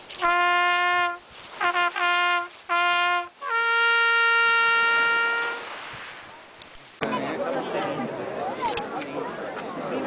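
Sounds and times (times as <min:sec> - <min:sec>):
trumpets holding long note: 0:00.2 - 0:05.7.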